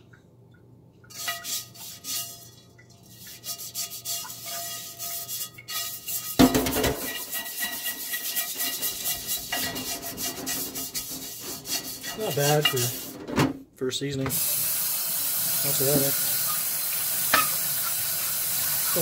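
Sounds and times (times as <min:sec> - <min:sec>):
brush scrubbing skillet: 0:01.1 - 0:13.4, 0:17.2 - 0:19.0.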